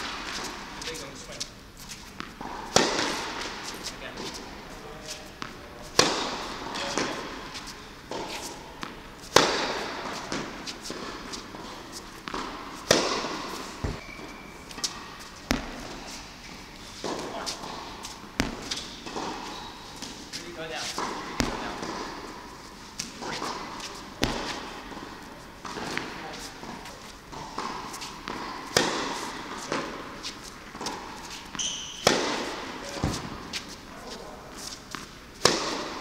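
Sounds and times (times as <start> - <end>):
tennis racket hitting ball: 0.0 - 36.0
footsteps on court: 0.1 - 36.0
ball thud: 12.2 - 14.2, 14.8 - 16.0, 17.0 - 19.4, 21.0 - 22.2, 23.1 - 26.2.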